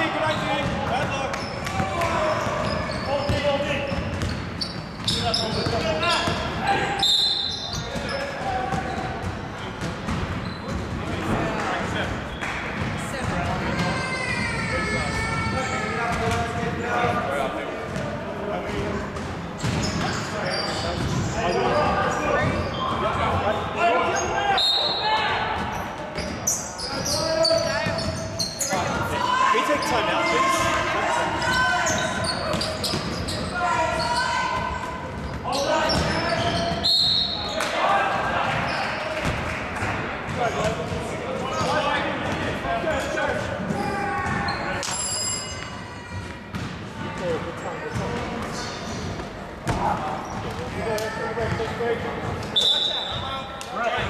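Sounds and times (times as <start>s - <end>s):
basketball bouncing on hardwood court: 2.6s - 6.4s, 9.8s - 11.0s, 46.5s - 46.8s
players shouting: 28.6s - 40.6s.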